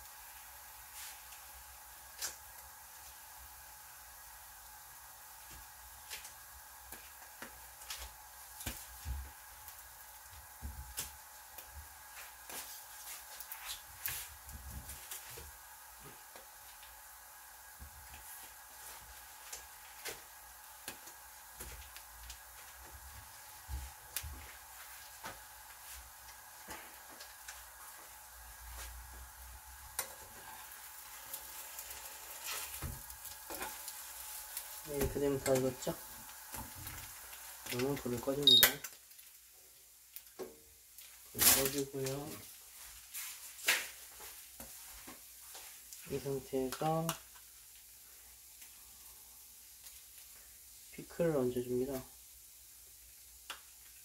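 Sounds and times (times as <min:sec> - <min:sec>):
toast sizzling in a pan: 0:00.0 - 0:54.0.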